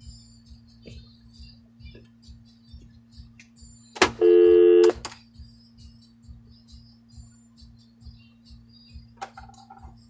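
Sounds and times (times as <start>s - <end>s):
dial tone: 4.2s - 5.0s.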